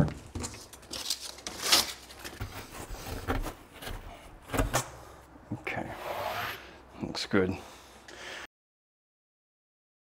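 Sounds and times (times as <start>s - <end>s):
rustles scrapes and soft knocks: 2.1s - 5.2s
long hissing scrape: 5.8s - 6.8s.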